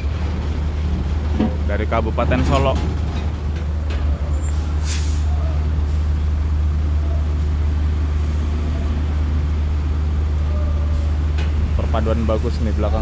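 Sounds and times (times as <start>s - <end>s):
diesel engine rumbling: 0.0s - 13.0s
air brakes hiss: 4.5s - 5.4s.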